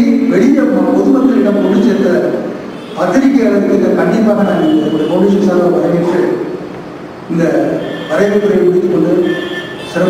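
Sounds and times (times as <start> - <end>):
man lecturing: 0.0 - 6.7, 7.3 - 10.0.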